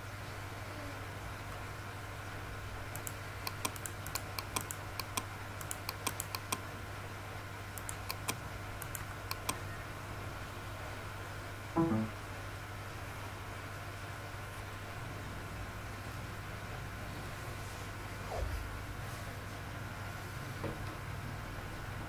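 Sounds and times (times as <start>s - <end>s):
low electrical hum: 0.0s - 22.0s
computer mouse clicks: 2.9s - 6.6s, 7.8s - 9.6s.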